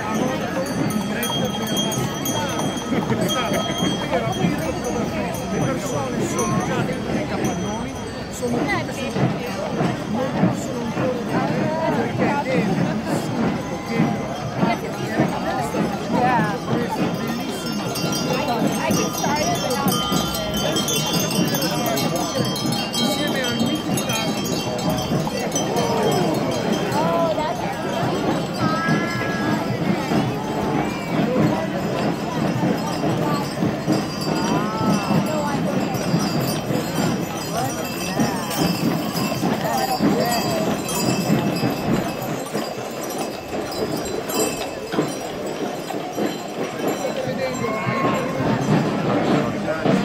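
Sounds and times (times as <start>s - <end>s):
crowd chatter: 0.0s - 50.0s
harness bells ringing: 0.0s - 50.0s
horse hooves clopping on street: 0.0s - 50.0s.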